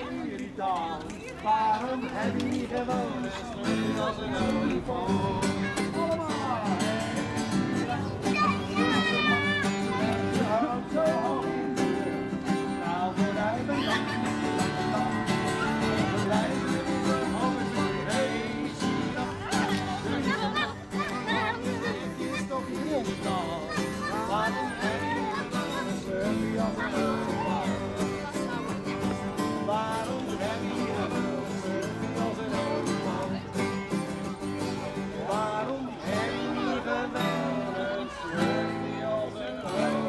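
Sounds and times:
acoustic guitar music: 0.0s - 40.0s
children's voices: 0.0s - 40.0s
crowd voices: 0.0s - 40.0s.

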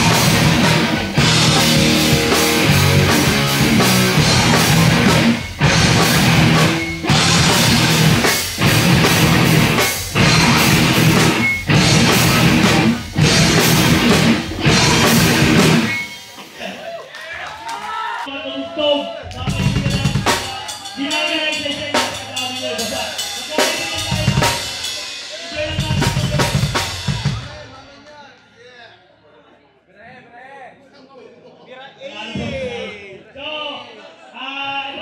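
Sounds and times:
punk band playing live: 0.0s - 16.8s, 19.3s - 27.8s.

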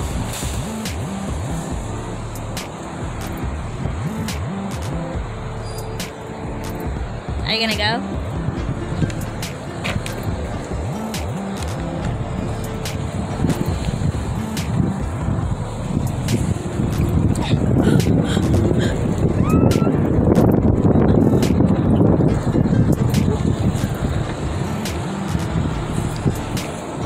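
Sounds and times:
wind rushing over microphone: 0.0s - 27.0s.

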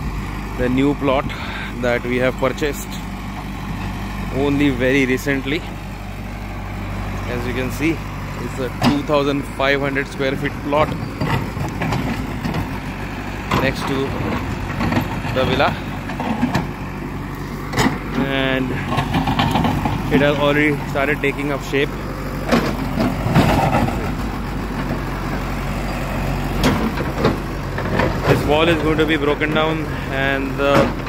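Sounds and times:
diesel engine running: 0.0s - 31.0s
digger digging soil and rock: 7.1s - 31.0s.

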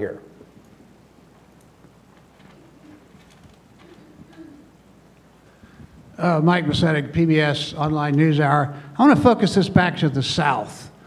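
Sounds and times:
faint steady hum: 0.0s - 11.0s
soft low murmurs: 2.4s - 4.9s.

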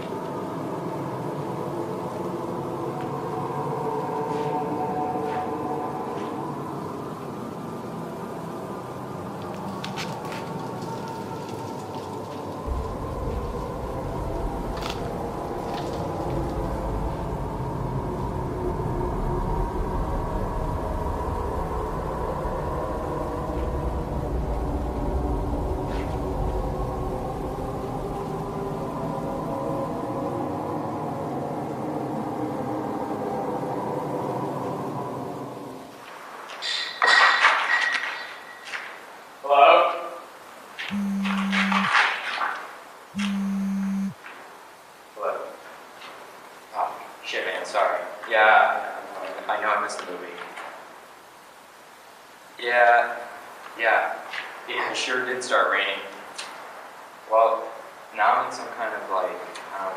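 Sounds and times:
dark horror drone: 0.0s - 36.1s
deep rumble: 12.7s - 29.5s.

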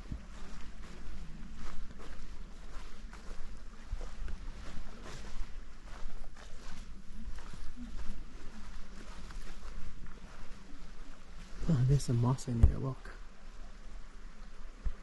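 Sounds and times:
footsteps on needles and bark: 0.4s - 10.6s.

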